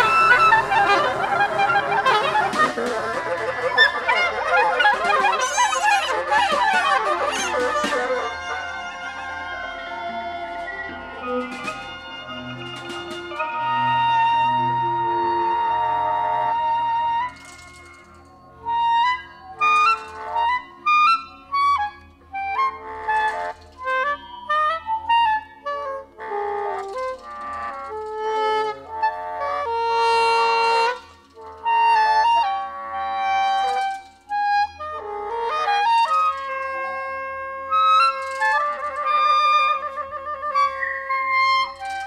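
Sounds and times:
solo clarinet melody: 0.0 - 42.0.

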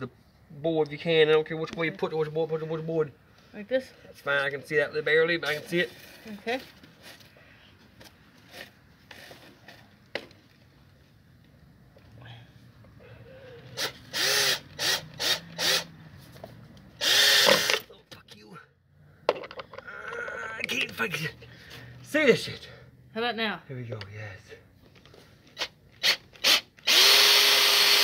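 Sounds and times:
cordless drill driving screw into wood: 13.7 - 15.9, 17.0 - 17.9, 25.6 - 28.0.

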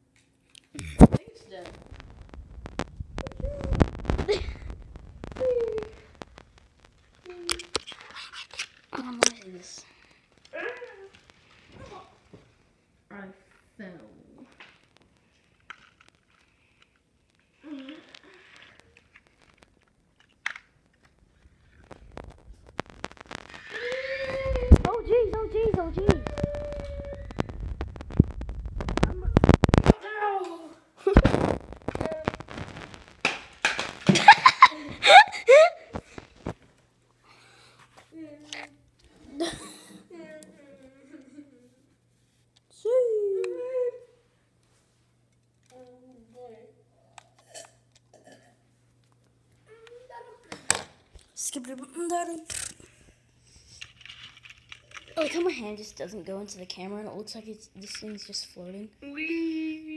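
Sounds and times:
light clicks of toy handling: 14.5 - 21.9, 57.8 - 58.4.

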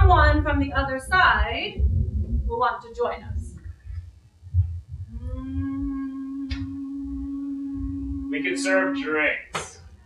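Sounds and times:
dull low thump: 0.0 - 5.2
eerie sustained low drone: 0.0 - 10.0.

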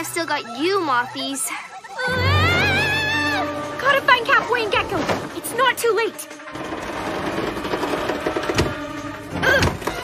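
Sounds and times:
machine humming: 6.2 - 10.0.

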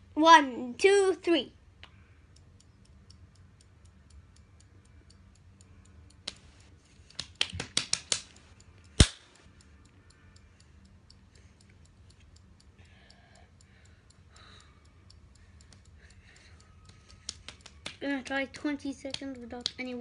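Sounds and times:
timer ticking: 0.0 - 20.0
sharp clicks: 6.1 - 9.5, 14.3 - 20.0.

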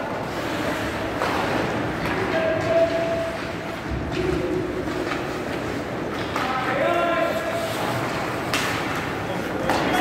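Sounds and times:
hockey sticks on ice: 0.0 - 10.0
skates scraping on ice: 0.0 - 10.0.

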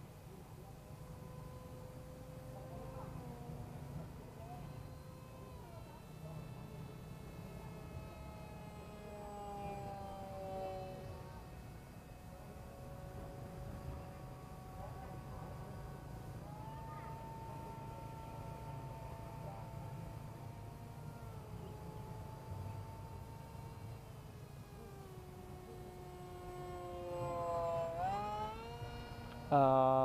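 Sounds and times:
electric motor and propeller whine: 0.0 - 30.0.

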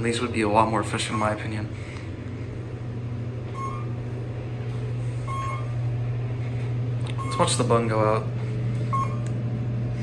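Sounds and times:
elevator hum: 0.0 - 10.0.

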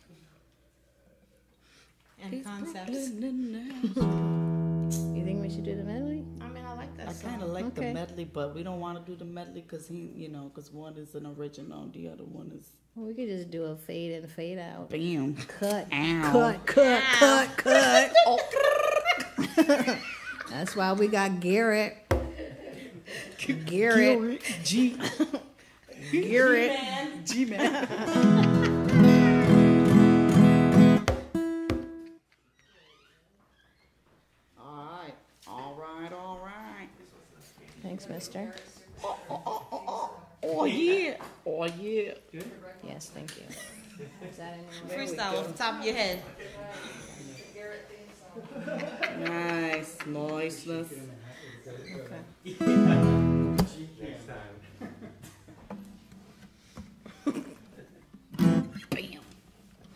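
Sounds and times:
acoustic guitar strums: 4.0 - 8.6, 28.1 - 32.2, 52.6 - 53.8, 58.2 - 59.1
laughter: 16.7 - 20.9, 22.3 - 23.6, 24.5 - 25.7, 27.3 - 29.3, 43.5 - 44.6, 48.4 - 50.3, 54.6 - 55.7, 57.0 - 58.0.

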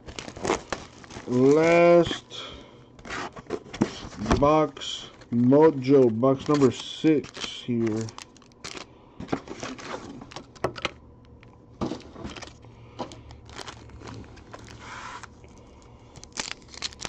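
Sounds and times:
foil wrappers crinkling: 0.0 - 10.7, 11.8 - 17.0.

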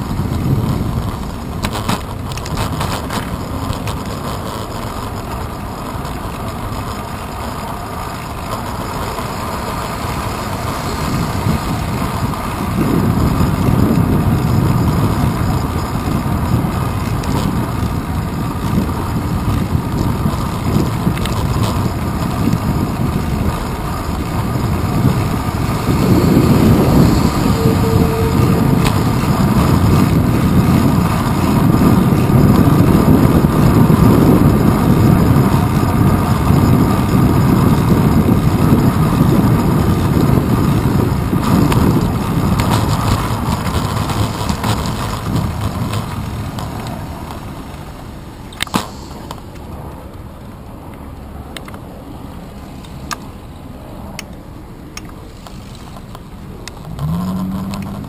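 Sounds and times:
passing city traffic: 0.0 - 58.0
road rumble: 0.0 - 58.0
wind: 0.0 - 58.0
brief thin tone: 27.1 - 28.8.

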